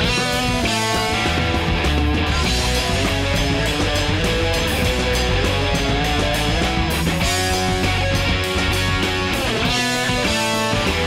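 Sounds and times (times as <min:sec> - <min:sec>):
electric guitar: 0:00.0 - 0:11.0
heavy bass line: 0:00.0 - 0:11.0.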